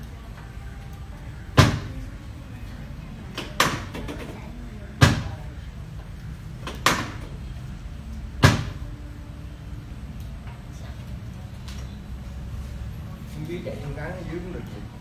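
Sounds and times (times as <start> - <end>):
padded table thumping: 1.6 - 2.0.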